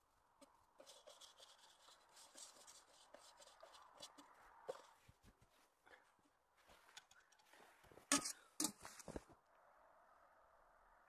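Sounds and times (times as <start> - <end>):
pot scraping through snow: 0.7 - 5.7, 6.6 - 9.3.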